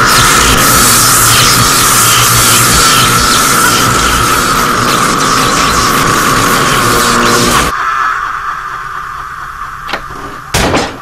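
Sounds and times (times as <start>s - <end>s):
electrical energy surge hum: 0.0s - 11.0s.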